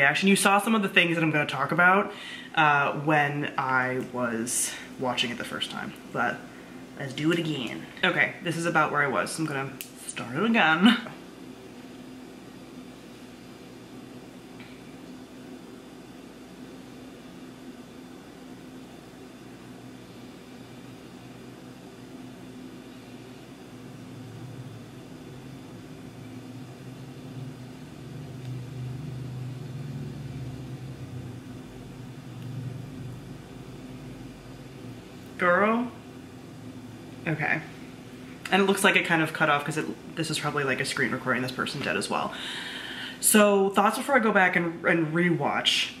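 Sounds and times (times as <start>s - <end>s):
faint hum: 0.0s - 46.0s.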